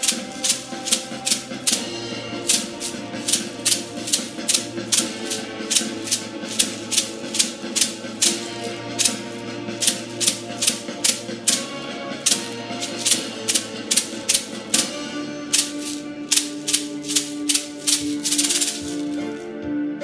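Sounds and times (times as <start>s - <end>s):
hand-held rattle shaken: 0.0s - 19.4s.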